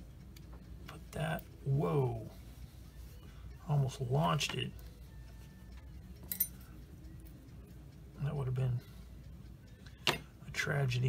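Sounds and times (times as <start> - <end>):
metal tweezers clinking: 6.2 - 6.6.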